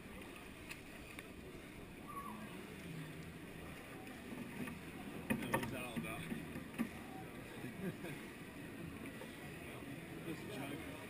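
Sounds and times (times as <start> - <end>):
pool water lapping against wall: 0.0 - 11.0.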